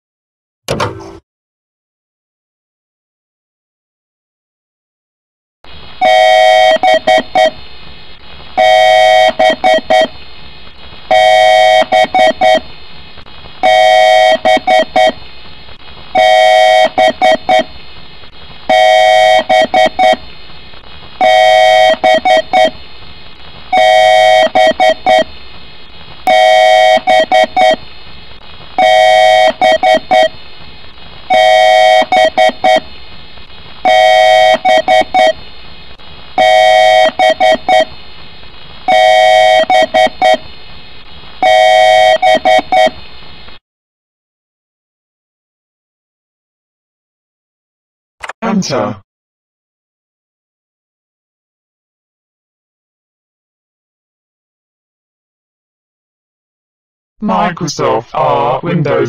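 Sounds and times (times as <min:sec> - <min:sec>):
computer self-test beeps: 0:06.0 - 0:07.6, 0:08.6 - 0:10.1, 0:11.1 - 0:12.6, 0:13.6 - 0:15.2, 0:16.2 - 0:17.7, 0:18.7 - 0:20.2, 0:21.2 - 0:22.8, 0:23.7 - 0:25.3, 0:26.3 - 0:27.8, 0:28.8 - 0:30.4, 0:31.3 - 0:32.8, 0:33.8 - 0:35.4, 0:36.4 - 0:37.9, 0:38.9 - 0:40.4, 0:41.4 - 0:43.0.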